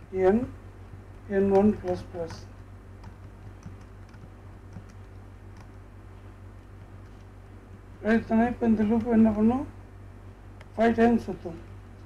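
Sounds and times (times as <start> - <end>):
steady low hum: 0.0 - 12.0
keyboard keystrokes: 3.0 - 5.8.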